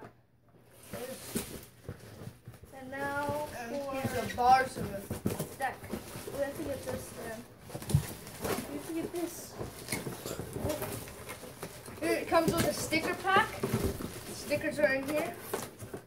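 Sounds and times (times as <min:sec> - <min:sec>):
plastic wrap rustling: 0:00.6 - 0:16.0
cardboard knocking and scraping: 0:00.8 - 0:16.0.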